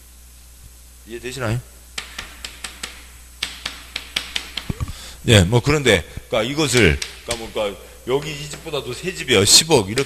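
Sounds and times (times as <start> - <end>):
chalk tapping on blackboard: 2.0 - 5.0, 6.6 - 9.0.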